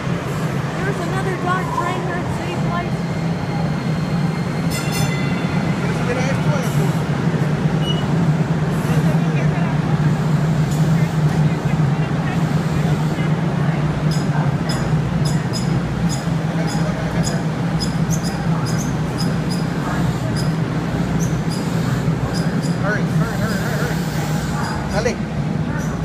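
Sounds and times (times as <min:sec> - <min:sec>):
light rail train rumbling: 0:00.0 - 0:26.0
high-pitched ringing: 0:01.5 - 0:06.7.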